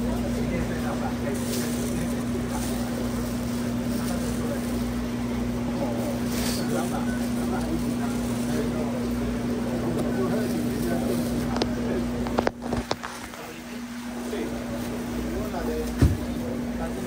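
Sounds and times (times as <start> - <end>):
indistinct chatter of shoppers: 0.0 - 17.0
steady electrical hum: 0.0 - 17.0.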